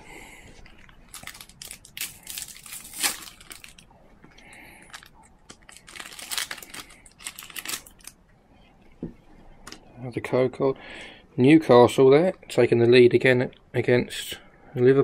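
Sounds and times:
foil wrapper tearing and crinkling: 1.1 - 3.9, 4.9 - 8.2.

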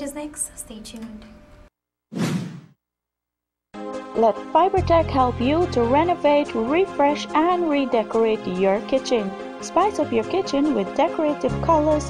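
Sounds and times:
music: 0.0 - 1.7, 3.8 - 12.0
whoosh sound effect: 2.1 - 2.8.

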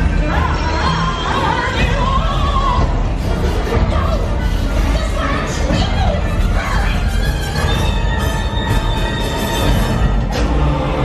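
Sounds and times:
ride soundtrack music: 0.0 - 11.0.

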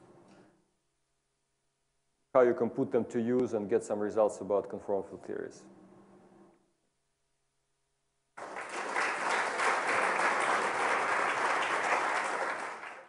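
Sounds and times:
audience applauding: 8.4 - 13.0.

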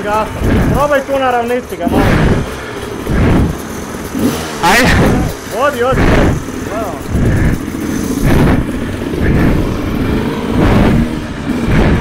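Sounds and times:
two-stroke motorcycle engine running: 0.0 - 12.0.

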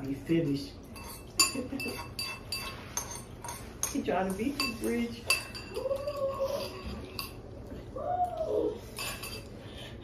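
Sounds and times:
metal utensils clinking on bowls: 0.8 - 7.5, 8.8 - 9.6.

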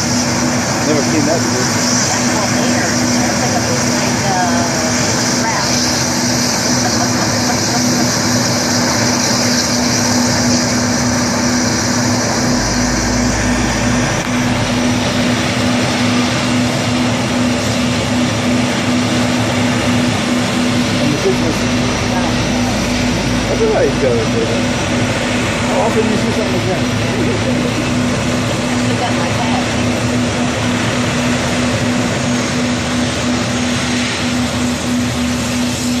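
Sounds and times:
deep rumble: 0.0 - 36.0
hovercraft loud rushing noise: 0.0 - 36.0.

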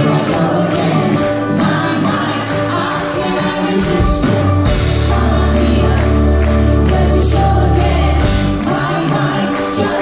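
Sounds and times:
live band playing: 0.0 - 10.0
people singing: 0.0 - 10.0.

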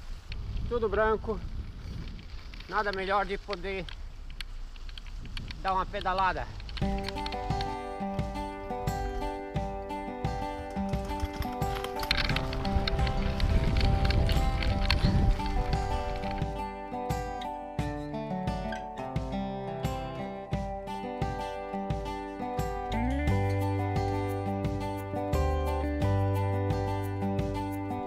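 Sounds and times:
background music with steady beat: 6.8 - 28.0.

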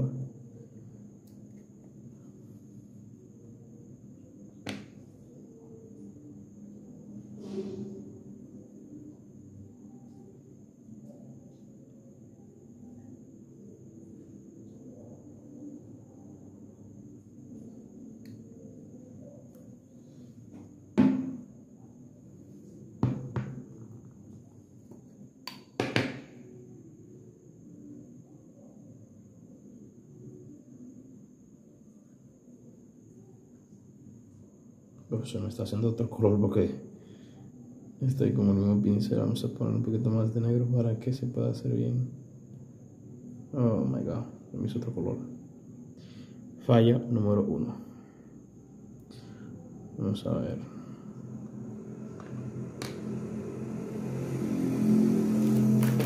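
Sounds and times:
faint high whine: 0.0 - 56.0
steady low hum: 26.2 - 56.0.

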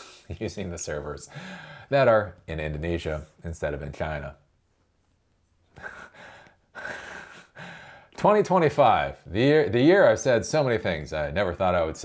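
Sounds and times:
man laughing breathily: 5.7 - 8.1.

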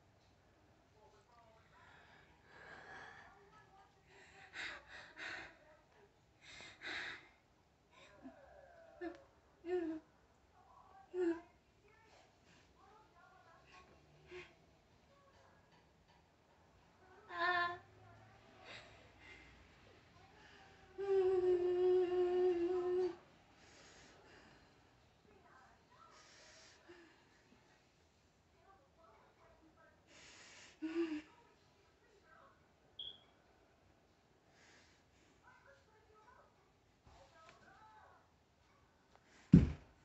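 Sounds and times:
woman breathing heavily: 1.7 - 5.7, 6.3 - 8.4
woman moaning hum: 8.0 - 10.1, 21.0 - 23.2.

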